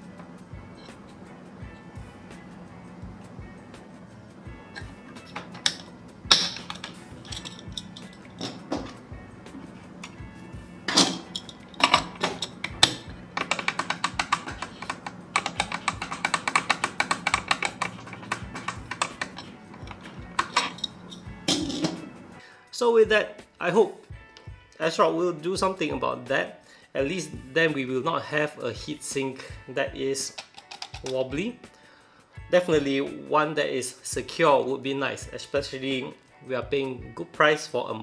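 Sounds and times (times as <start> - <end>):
metal plate clicking against clip: 10.9 - 22.0, 30.3 - 31.2.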